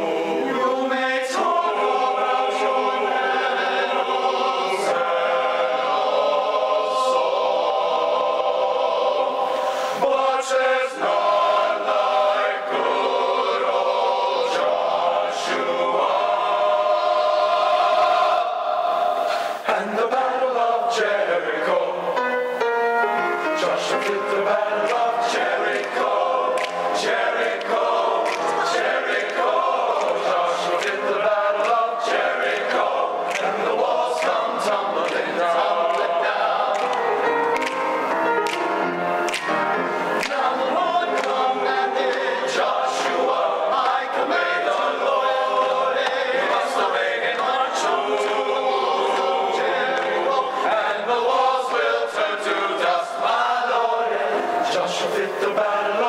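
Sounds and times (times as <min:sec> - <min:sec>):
men's choir singing: 0:00.0 - 0:56.0.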